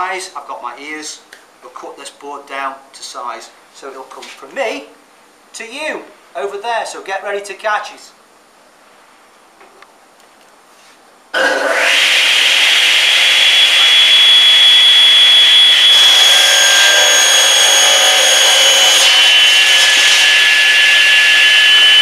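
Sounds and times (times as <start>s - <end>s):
table saw whining: 11.4s - 22.0s.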